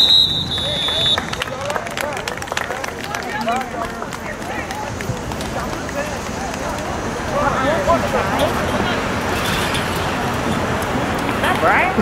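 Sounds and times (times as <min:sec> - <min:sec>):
overlapping voices calling out: 0:00.0 - 0:09.3.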